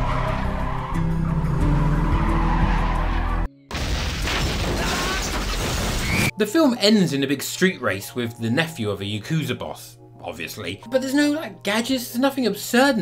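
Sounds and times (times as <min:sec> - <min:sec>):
tyres skidding: 0:00.0 - 0:03.5
music: 0:00.0 - 0:04.2, 0:06.1 - 0:13.0.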